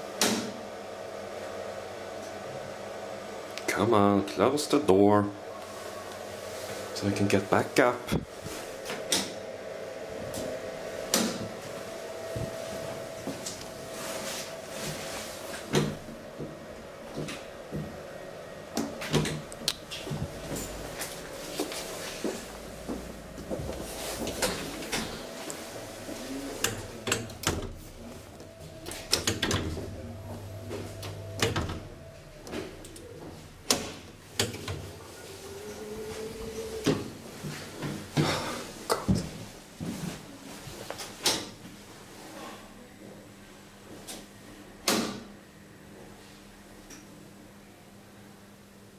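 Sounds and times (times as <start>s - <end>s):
lift motor hum: 0.0s - 38.9s
lift door mechanism clunking: 28.8s - 30.0s, 30.8s - 32.0s.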